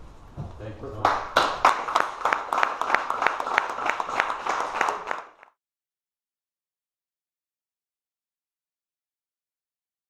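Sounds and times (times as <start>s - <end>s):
small audience clapping: 0.9s - 5.6s.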